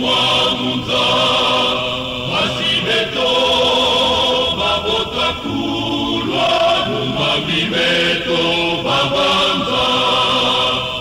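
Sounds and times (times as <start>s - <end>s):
male choir singing gospel: 0.0s - 11.0s.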